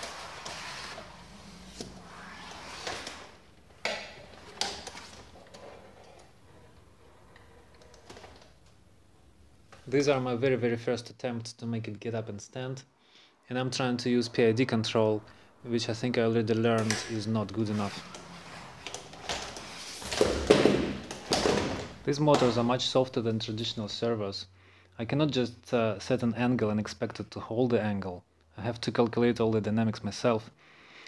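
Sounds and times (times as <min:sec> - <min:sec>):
plastic legs knocking: 0:19.2 - 0:22.6.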